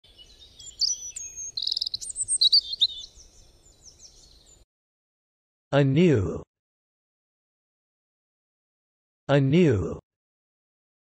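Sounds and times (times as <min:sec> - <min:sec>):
birds chirping and trilling: 0:00.0 - 0:04.7.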